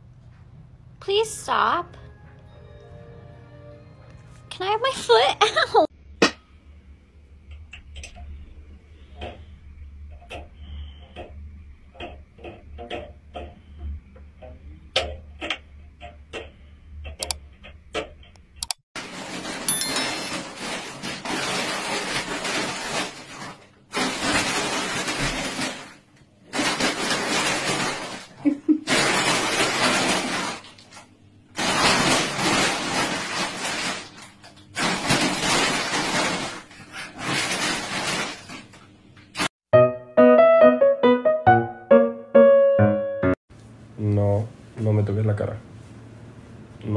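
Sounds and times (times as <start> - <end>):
dog rustling in plastic bag: 19.0 - 31.0, 31.6 - 38.7.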